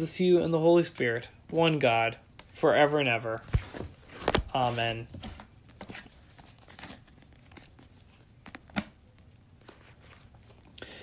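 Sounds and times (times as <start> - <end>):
faint paper rustling: 3.3 - 10.8.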